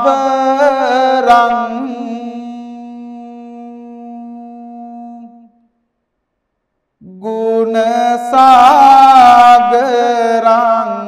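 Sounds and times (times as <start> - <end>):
monk chanting hummed note: 1.7 - 5.5.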